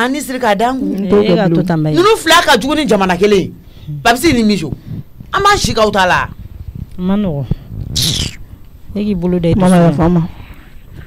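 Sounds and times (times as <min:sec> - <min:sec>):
person vocal sound falling: 0:08.0 - 0:08.4.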